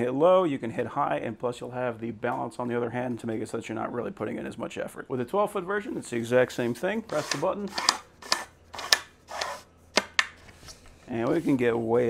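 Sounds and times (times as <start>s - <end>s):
extension pole sliding scrapes: 6.6s - 9.7s, 10.4s - 12.0s.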